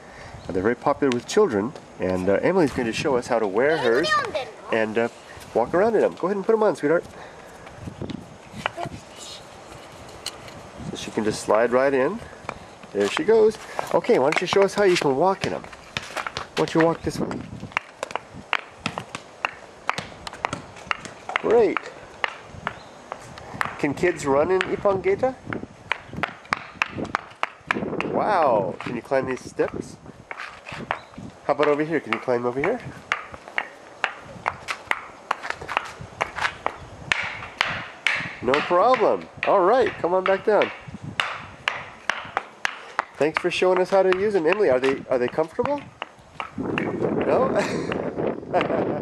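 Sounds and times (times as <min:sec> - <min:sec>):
wooden sandals clacking: 0:08.5 - 0:48.8.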